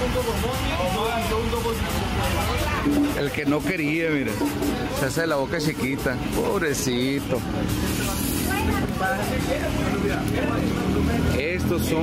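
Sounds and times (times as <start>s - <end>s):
indistinct voices talking: 0.0s - 12.0s.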